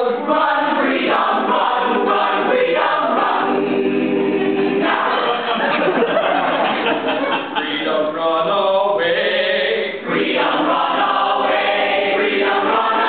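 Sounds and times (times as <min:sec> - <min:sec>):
cast singing gospel chorus: 0:00.0 - 0:13.0.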